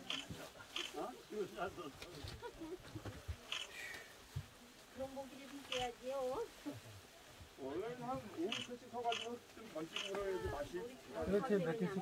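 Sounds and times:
low murmur of voices: 0.0s - 12.0s.

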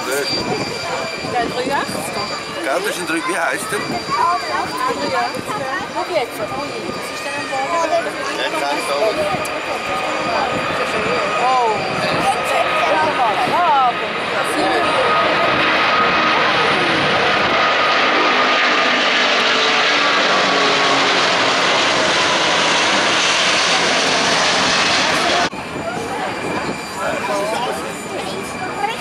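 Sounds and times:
jet airliner roar: 0.0s - 29.0s
voices: 0.0s - 29.0s.

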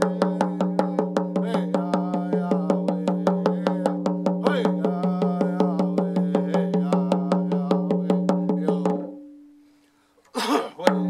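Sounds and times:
frame drum beaten fast: 0.0s - 9.1s
man singing a held chant: 0.0s - 9.1s, 10.7s - 11.0s.

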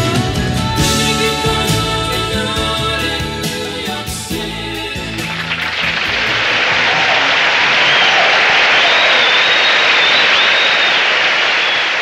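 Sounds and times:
audience applauding and cheering: 5.0s - 12.0s
high whistles: 5.7s - 12.0s.

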